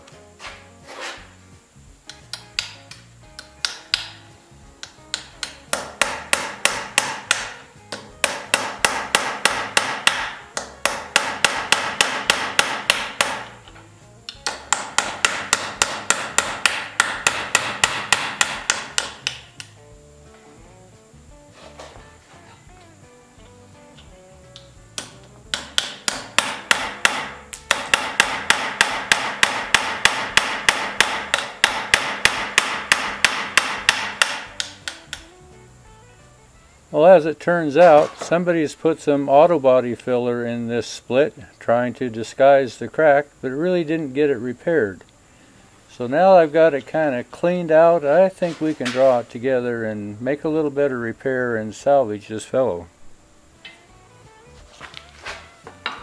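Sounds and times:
hammer tapping on chisel: 2.1s - 4.2s, 4.8s - 19.8s, 24.0s - 35.3s, 55.7s - 56.0s.

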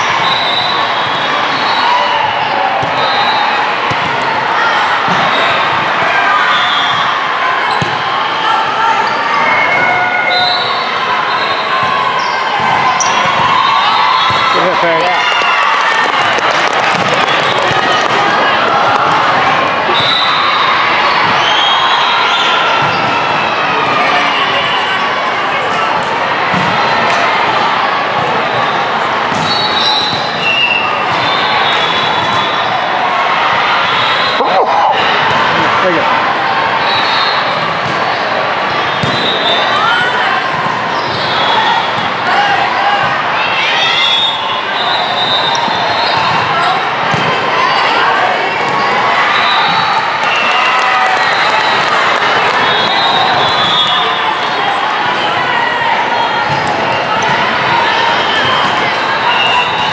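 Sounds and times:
volleyballs hit and bouncing: 3.8s - 4.4s, 14.2s - 20.1s
overlapping voices: 34.3s - 36.2s.

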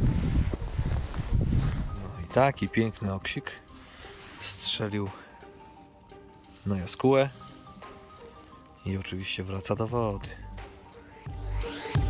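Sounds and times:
wind buffeting microphone: 0.0s - 2.2s.

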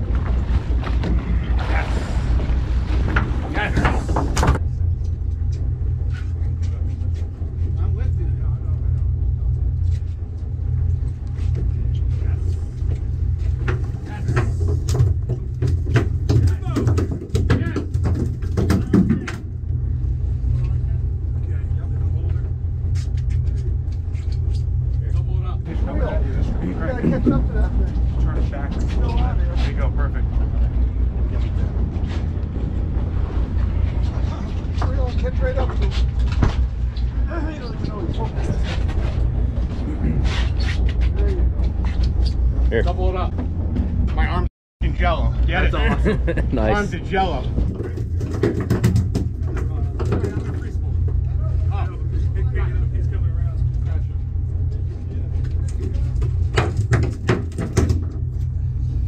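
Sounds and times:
boat engine running: 0.0s - 59.0s
clattering knocks: 47.7s - 50.7s.

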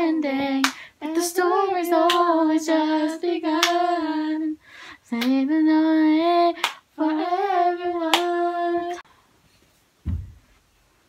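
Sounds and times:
girls singing: 0.0s - 9.1s
hand claps: 0.6s - 0.9s, 2.0s - 2.3s, 3.6s - 3.8s, 5.2s - 5.4s, 6.6s - 6.8s, 8.1s - 8.4s.

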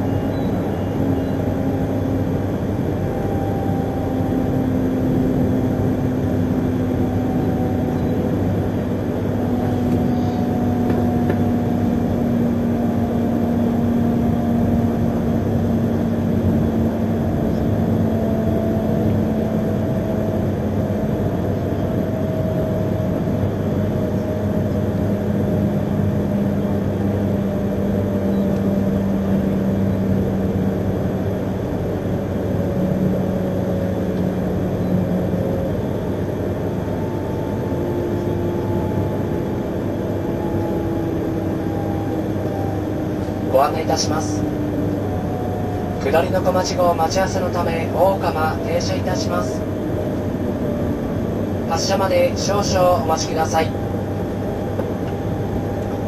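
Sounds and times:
train wheels rumbling on rail: 0.0s - 51.9s, 53.8s - 56.0s
low motor hum: 0.0s - 56.0s.

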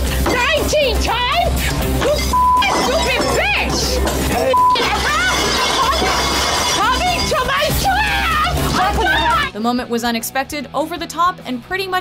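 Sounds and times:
dishes crashing and shattering: 2.6s - 7.8s
women shouting: 6.8s - 9.5s.

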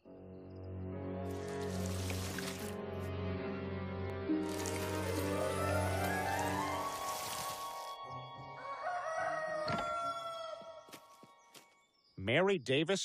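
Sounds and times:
rising swell of music: 0.4s - 9.0s
rooster crowing: 8.4s - 11.0s.

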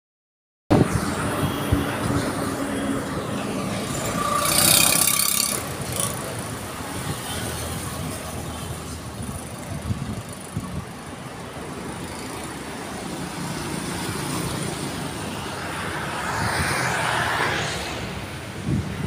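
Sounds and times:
road traffic rumble: 0.7s - 19.0s.

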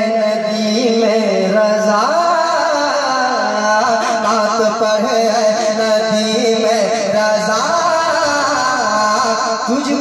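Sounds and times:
man singing over public address: 0.0s - 10.0s.

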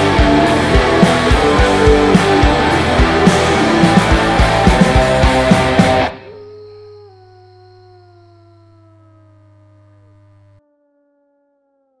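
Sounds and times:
electric guitar tones bending down: 0.0s - 6.4s
low amplifier hum: 0.0s - 10.6s.

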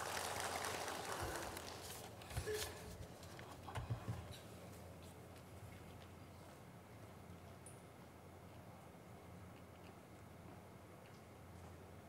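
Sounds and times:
audience applause: 0.0s - 2.2s.

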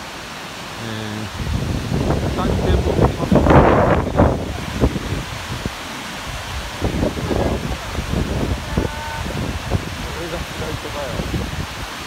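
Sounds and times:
waterfall rushing: 0.0s - 12.0s
wind on microphone: 0.9s - 12.0s.

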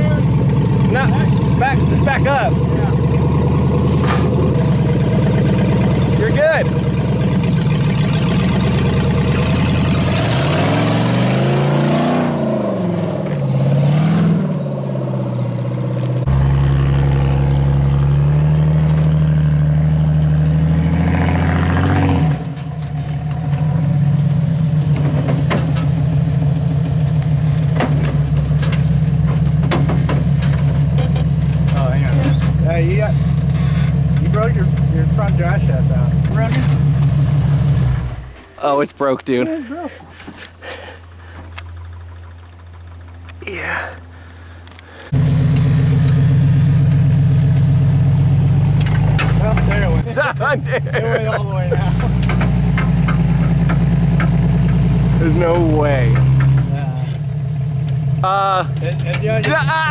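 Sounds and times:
engine running under load: 0.0s - 59.9s
off-road engine revving: 0.0s - 59.9s.

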